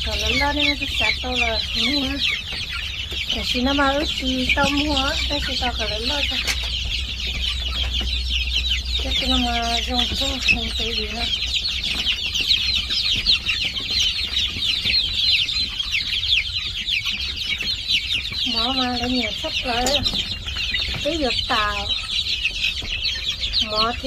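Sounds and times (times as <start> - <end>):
chicks peeping: 0.0 - 24.0.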